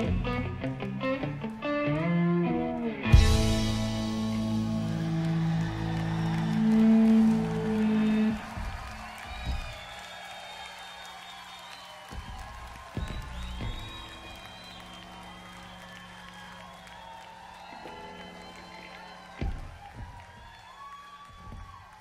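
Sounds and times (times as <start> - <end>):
drums: 0.0 - 0.8, 3.0 - 10.0, 11.9 - 15.8, 18.4 - 20.5
electric guitar notes ringing: 0.0 - 9.0
low thumps: 3.2 - 9.9, 12.1 - 14.9
audience cheering and whistling: 3.2 - 22.0.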